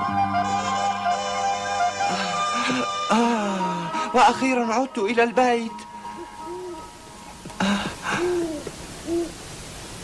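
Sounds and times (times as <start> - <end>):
owl hooting: 6.0 - 7.0, 8.1 - 9.4.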